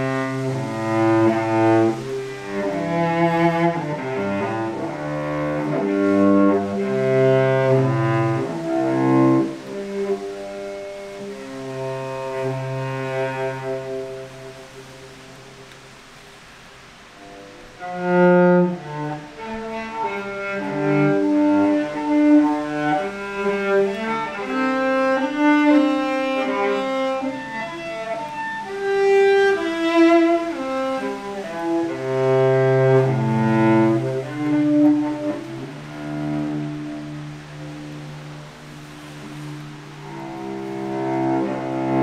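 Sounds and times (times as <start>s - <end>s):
bowed cello: 0.0s - 42.0s.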